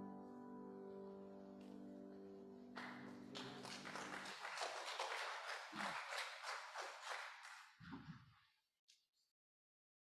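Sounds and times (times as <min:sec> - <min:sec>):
piano chord: 0:00.0 - 0:03.6
congregation clapping: 0:02.7 - 0:08.0.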